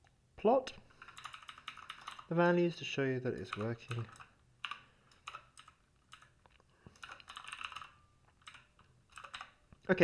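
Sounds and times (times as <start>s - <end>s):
typing on a computer keyboard: 1.0s - 2.3s, 3.3s - 9.6s.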